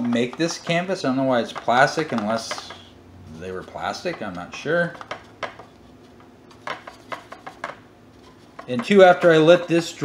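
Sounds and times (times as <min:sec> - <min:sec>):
paintbrush tapping on plastic: 0:01.5 - 0:02.9, 0:06.6 - 0:07.8.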